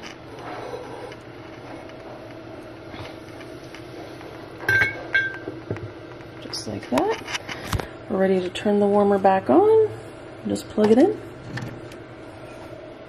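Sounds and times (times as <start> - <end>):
faint steady hum: 0.0 - 13.0
ceramic clinks: 4.7 - 5.4.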